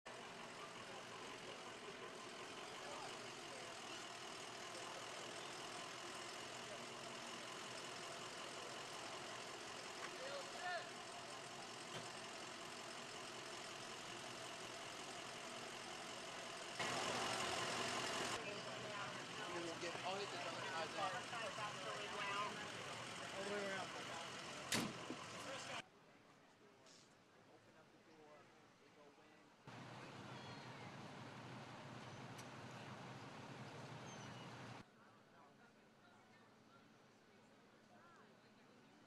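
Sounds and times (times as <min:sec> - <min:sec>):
vehicle engine idling: 0:00.1 - 0:25.8, 0:29.7 - 0:34.8.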